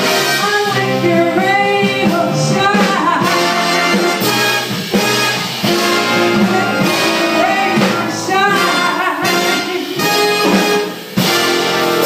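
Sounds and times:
big band brass chords: 0.0 - 12.0.

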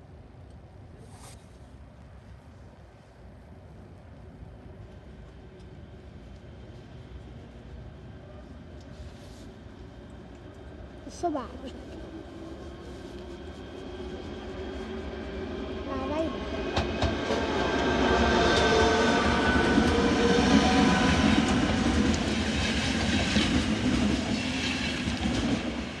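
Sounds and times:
electric train passing: 9.5 - 26.0.

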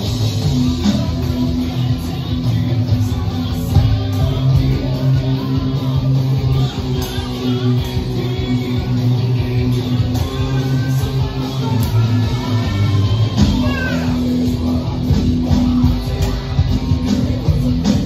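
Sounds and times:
electric guitar metal riff: 0.0 - 18.0.

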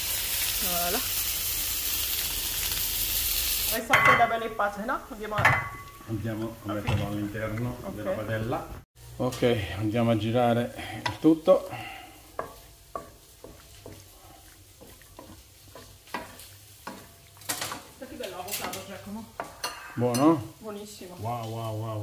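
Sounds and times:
light sizzle: 0.0 - 22.0
spoon knocking pan: 3.9 - 7.7, 12.3 - 20.4
spoon scraping frying pan: 12.2 - 20.6.

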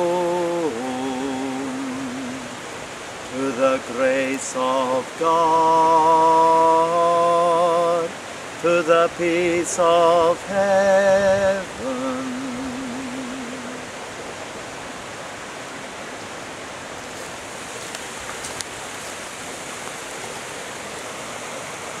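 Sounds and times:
man singing low note: 0.0 - 2.6, 3.3 - 14.0
water rushing over rocks: 0.0 - 22.0.

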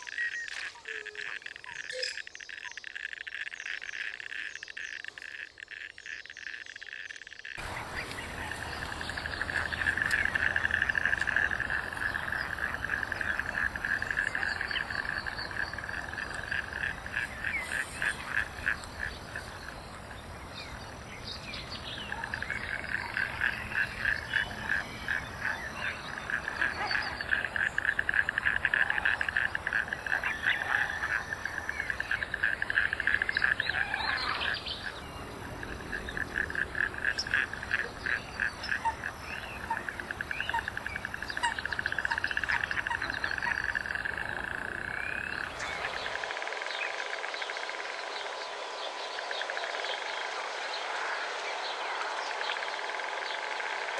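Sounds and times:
frogs trilling: 0.0 - 53.9.

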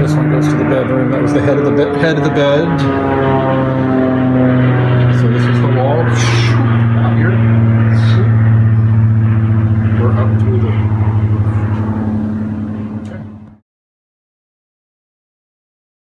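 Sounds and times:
low motor hum: 0.0 - 13.6.

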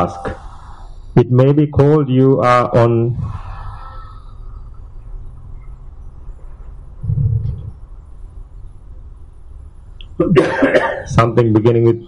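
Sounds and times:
soft low vocal sound: 0.0 - 8.0
low steady hum: 0.0 - 12.0
person coughing loudly: 10.2 - 11.2.

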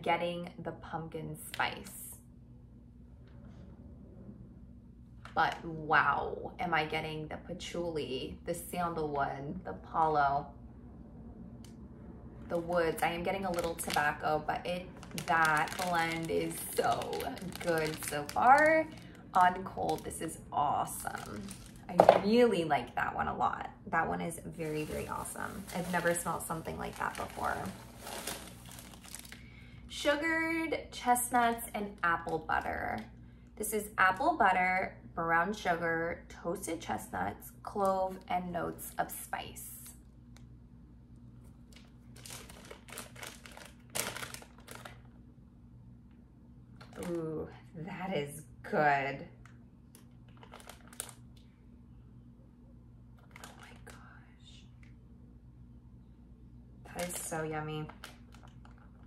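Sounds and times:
steady low hum: 0.0 - 59.0
plastic bag crinkling: 12.5 - 22.1, 24.5 - 29.8, 41.6 - 45.2, 46.8 - 47.2, 49.9 - 51.4, 53.2 - 54.0, 56.9 - 59.0.

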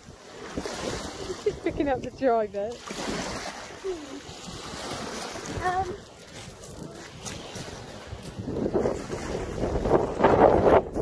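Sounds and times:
small waves on shingle shore: 0.0 - 11.0
wind buffeting microphone: 0.0 - 11.0.

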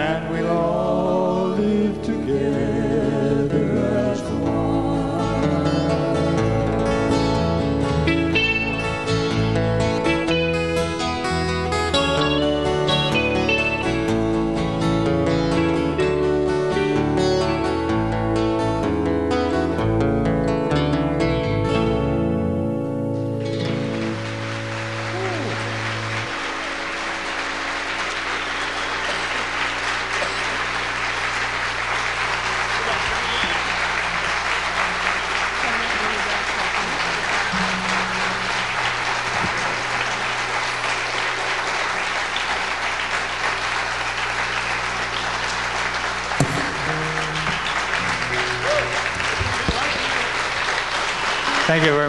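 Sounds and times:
audience applauding: 23.4 - 52.0.

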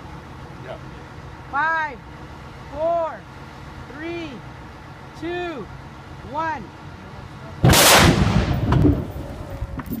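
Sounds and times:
low rumble of blast: 7.3 - 10.0.

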